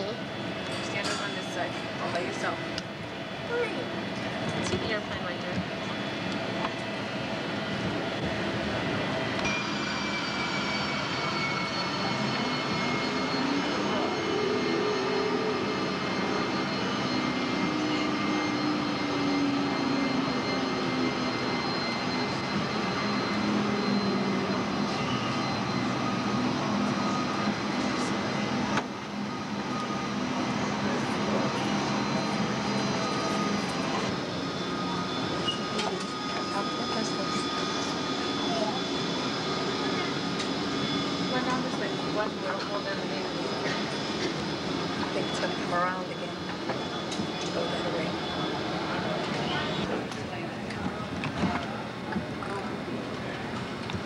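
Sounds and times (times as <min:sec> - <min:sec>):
jet engines whining: 0:00.0 - 0:54.0
faint voices: 0:10.8 - 0:54.0.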